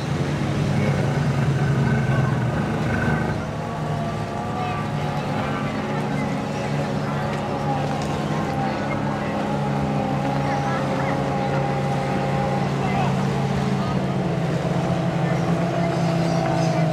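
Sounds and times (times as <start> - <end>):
outboard motors running flat out: 0.0 - 16.9.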